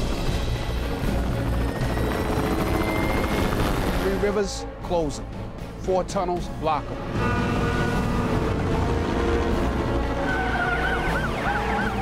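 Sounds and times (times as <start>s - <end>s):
helicopter rotor and turbine: 0.0s - 4.5s.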